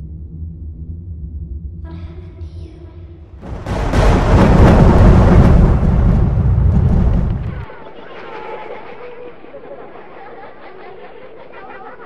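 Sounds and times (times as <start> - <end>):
loud deep rumbling: 3.2 - 7.7.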